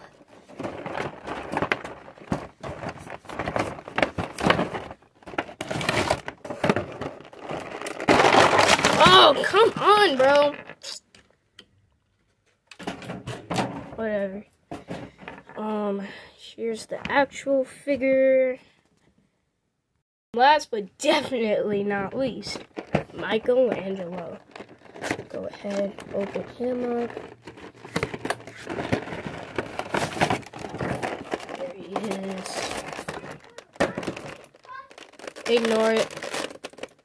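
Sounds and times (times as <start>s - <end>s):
plastic packaging crinkling: 0.0s - 10.9s, 22.5s - 37.0s.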